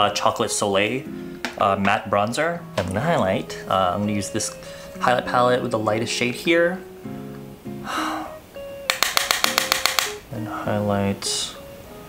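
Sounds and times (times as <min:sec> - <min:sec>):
guitar background music: 0:00.0 - 0:12.0
brush tapping on palette: 0:01.4 - 0:02.0, 0:08.9 - 0:10.2.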